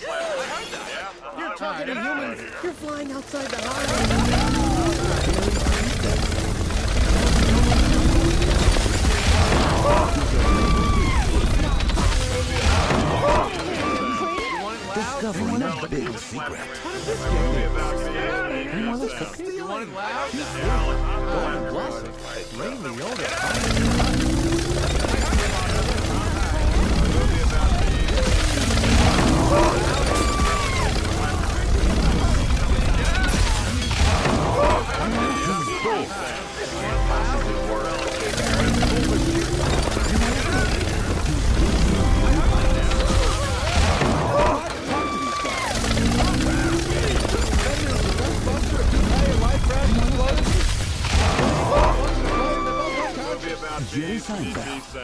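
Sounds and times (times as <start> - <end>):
film trailer music: 0.0 - 55.0
overlapping voices: 2.4 - 55.0
sound effects: 2.7 - 55.0.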